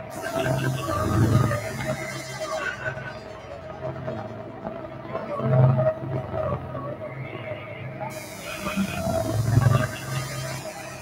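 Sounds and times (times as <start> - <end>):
high synth hiss: 0.0 - 3.1, 8.1 - 11.0
low synthesizer drone: 0.0 - 11.0.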